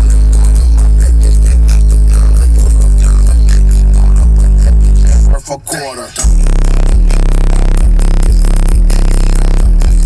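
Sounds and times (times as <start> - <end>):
bass-heavy music from car stereo: 0.0 - 10.0.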